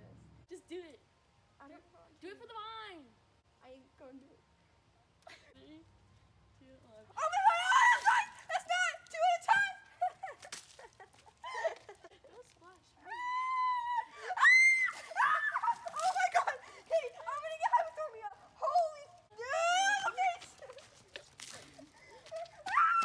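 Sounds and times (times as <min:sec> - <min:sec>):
girls shrieking and laughing: 0:07.2 - 0:12.4, 0:13.0 - 0:23.0
long screams: 0:13.1 - 0:15.7.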